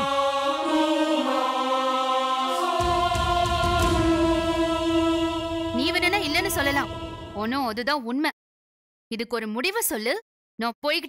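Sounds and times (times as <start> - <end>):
chant-like sustained voices: 0.0 - 7.8
low bass layer: 2.6 - 7.9.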